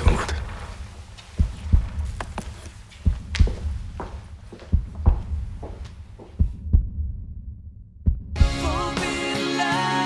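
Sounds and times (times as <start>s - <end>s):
slow heartbeat thumps: 0.0s - 8.6s.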